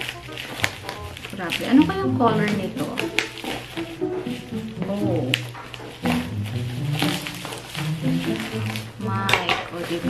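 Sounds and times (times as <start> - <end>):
background music melody: 0.0 - 10.0.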